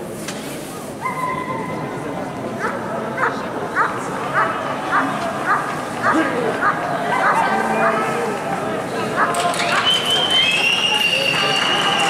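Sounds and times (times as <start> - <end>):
crowd chatter: 0.0 - 12.0
dog barking: 2.6 - 6.2.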